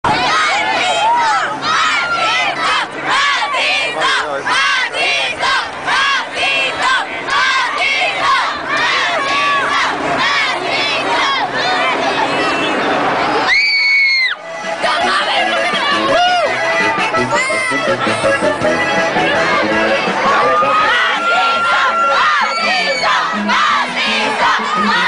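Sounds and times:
crowd shouting and screaming: 0.1 - 25.0.

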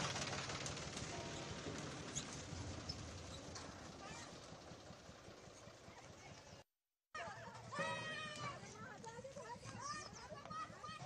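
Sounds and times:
tractor diesel engine running: 0.0 - 6.6.

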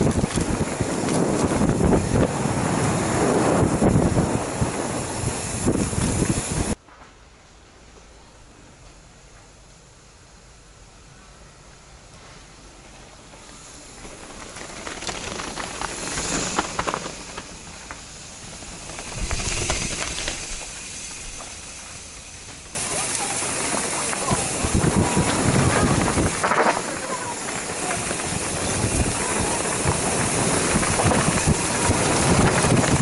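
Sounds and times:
bike tyres rolling over gravel: 0.0 - 6.8, 12.8 - 33.0
stones and bike rattling: 0.0 - 6.8, 13.3 - 33.0
wind on microphone: 0.0 - 6.8, 24.3 - 33.0.

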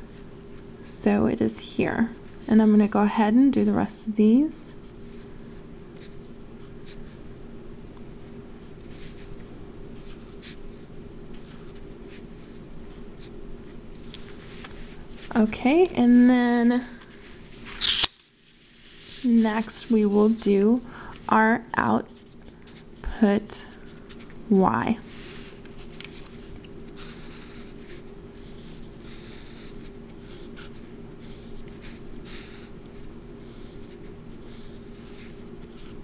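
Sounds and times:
steady low hum: 0.0 - 36.0
pen scratching on paper: 26.9 - 36.0.

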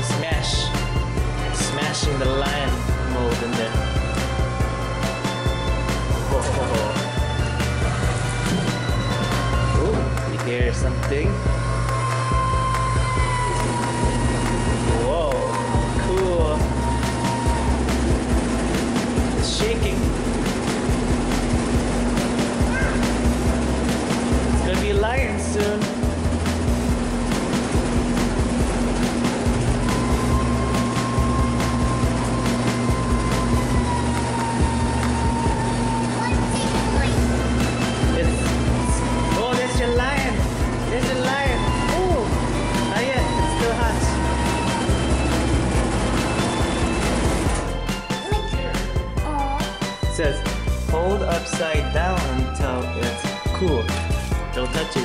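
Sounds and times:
music with sustained tones: 0.0 - 55.0.

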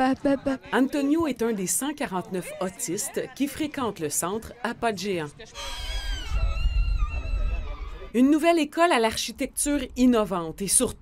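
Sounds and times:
child squealing: 5.6 - 8.1.

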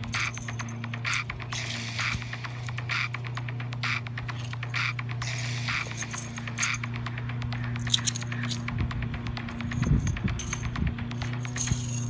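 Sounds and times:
light metallic jingling: 0.0 - 2.8, 4.2 - 8.8, 9.4 - 12.0
steady low hum: 0.0 - 12.0.

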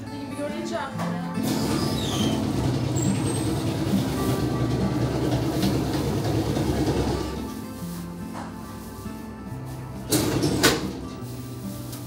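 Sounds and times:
bread slicing machine rattling: 1.4 - 7.5.

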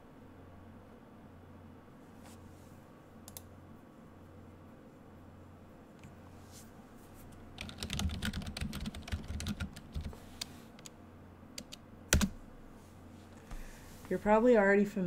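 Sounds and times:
typing on computer keyboard: 7.6 - 10.9, 11.6 - 12.4.

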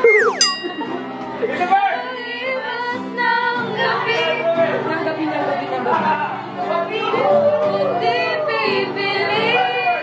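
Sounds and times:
people chattering: 0.0 - 1.1.

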